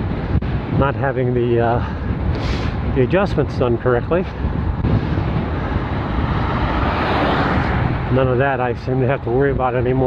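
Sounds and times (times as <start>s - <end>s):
wind rumble on microphone: 0.0s - 10.0s
vehicle passing by: 4.8s - 8.5s.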